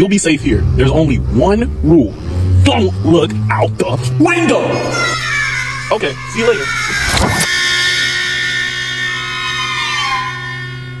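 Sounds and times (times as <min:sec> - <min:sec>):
car door shutting: 0:06.9 - 0:07.5.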